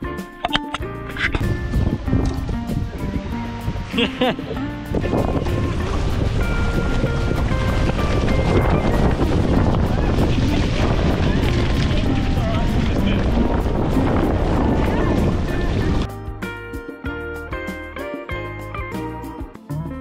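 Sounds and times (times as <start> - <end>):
faint background music: 0.0 - 17.4
rushing water: 0.5 - 16.1
wind buffeting microphone: 1.3 - 16.1.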